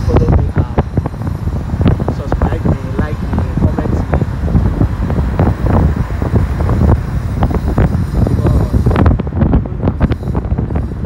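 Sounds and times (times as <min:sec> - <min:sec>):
road traffic noise: 0:00.0 - 0:11.0
wind buffeting microphone: 0:00.0 - 0:11.0.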